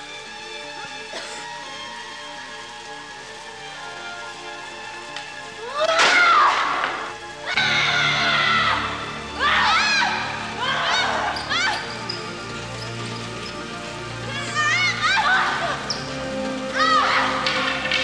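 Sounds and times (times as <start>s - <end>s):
dramatic orchestral music: 0.0s - 18.0s
woman screaming: 5.6s - 6.6s, 7.5s - 11.8s, 14.3s - 15.8s, 16.7s - 17.4s.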